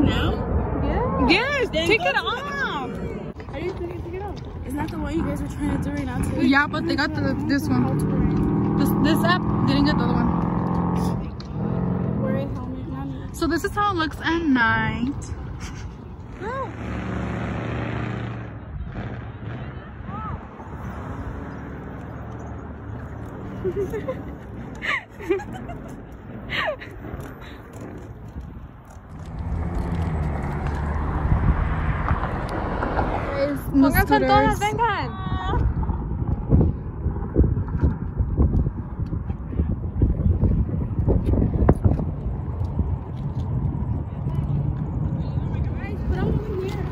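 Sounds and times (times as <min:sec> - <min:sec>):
scooter wheels rumbling on pavement: 0:00.0 - 0:46.9
vehicle engine hum: 0:00.0 - 0:46.9
wind on microphone: 0:20.1 - 0:46.9.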